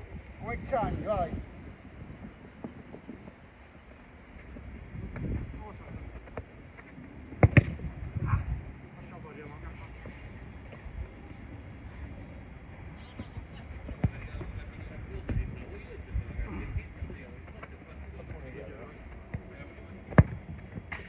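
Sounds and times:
football kicks on turf: 0:07.4 - 0:07.9, 0:20.1 - 0:20.4.

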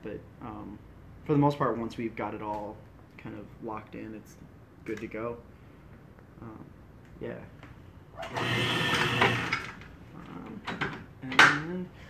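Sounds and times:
mechanical whir with low hum: 0:08.0 - 0:11.0.

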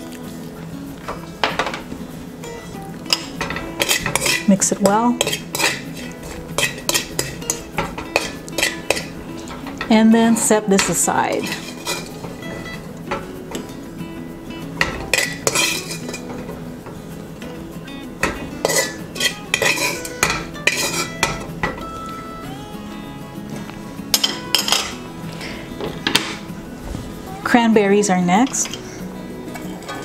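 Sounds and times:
metal spoon scraping a wok: 0:03.1 - 0:12.4, 0:14.8 - 0:16.5, 0:18.5 - 0:21.3.

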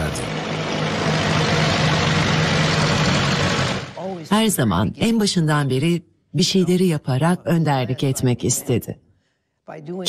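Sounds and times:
tractor engine running: 0:00.0 - 0:04.0.

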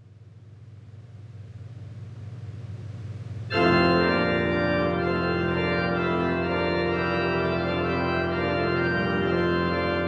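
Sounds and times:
low pipe organ tone: 0:03.5 - 0:10.0.

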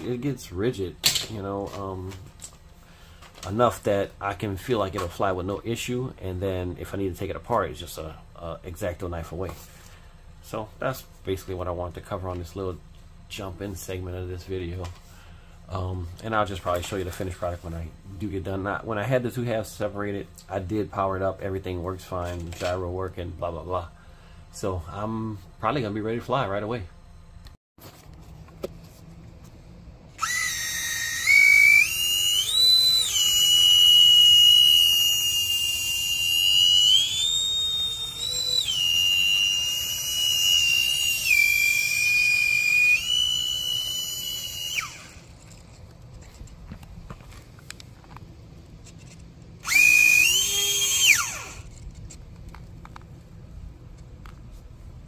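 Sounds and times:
electric ducted fans whining: 0:00.0 - 0:55.0.

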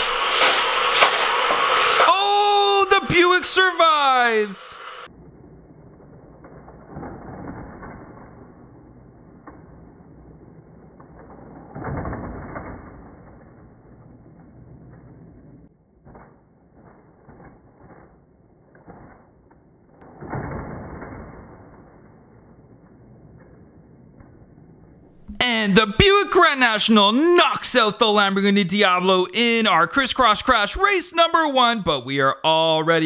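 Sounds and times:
motorized toy track booster whir: 0:00.0 - 0:02.1
toy cars clacking on plastic track: 0:00.0 - 0:02.1.

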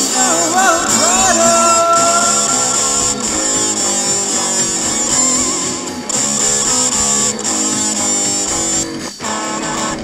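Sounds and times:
hard rock guitar music: 0:00.0 - 0:10.0.

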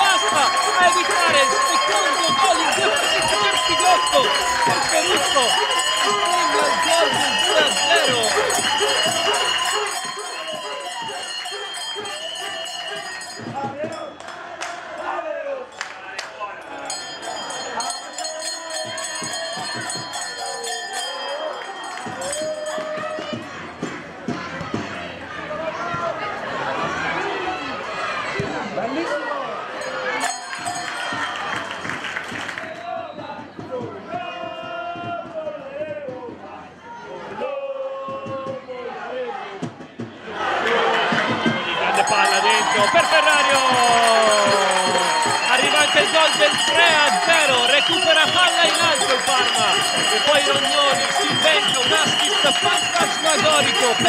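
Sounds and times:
voices shouting and calling out: 0:00.0 - 0:31.6, 0:36.6 - 0:54.0
crowd noise: 0:00.0 - 0:54.0.

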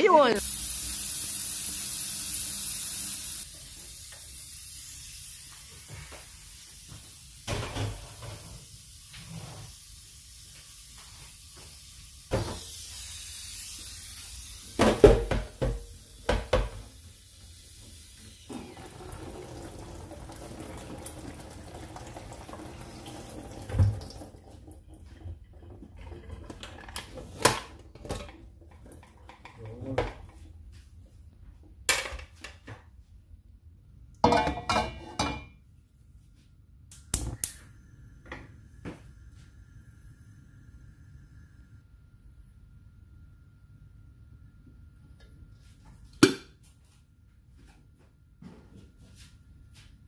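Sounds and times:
running tap water: 0:00.4 - 0:05.6, 0:12.4 - 0:26.5
metal pot and lid clanking: 0:34.2 - 0:35.6.

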